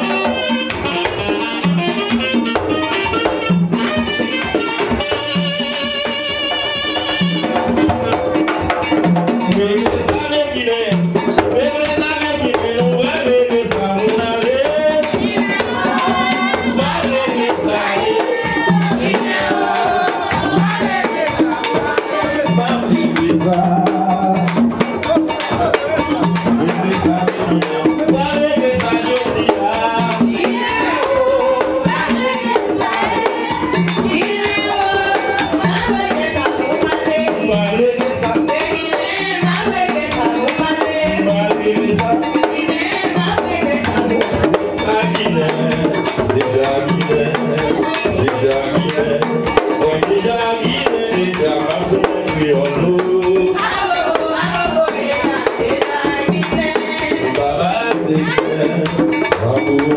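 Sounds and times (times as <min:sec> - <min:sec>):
group singing: 0:00.0 - 0:59.9
hand drums fast beat: 0:00.0 - 0:59.9
held melody line: 0:00.0 - 0:59.9.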